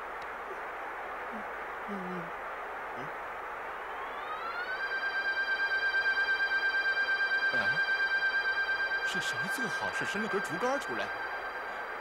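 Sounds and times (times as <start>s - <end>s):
rising pulsing electronic tone: 3.9s - 12.0s.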